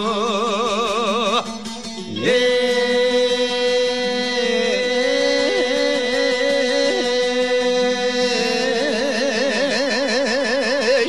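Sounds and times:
folk music held vibrato note: 1.5s - 11.0s
steady held drone tone: 1.6s - 10.8s.

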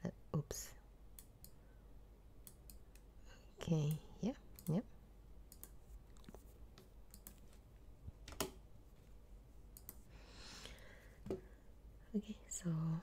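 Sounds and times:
computer keyboard keystrokes: 5.5s - 7.6s, 8.3s - 8.6s, 9.8s - 10.0s.

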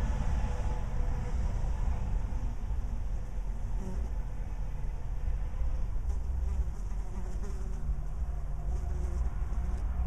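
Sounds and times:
steady low rumble: 0.0s - 10.0s
flying insect buzzing: 3.6s - 4.4s, 6.1s - 10.0s.

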